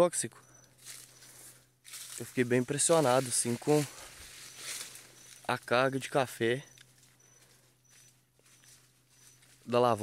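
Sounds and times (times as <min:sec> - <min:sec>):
high-pitched peeps: 0:04.3 - 0:09.6.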